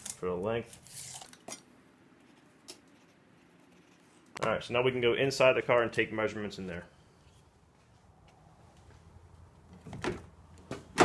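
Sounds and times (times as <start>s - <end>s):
faint low hum: 0.0s - 10.7s.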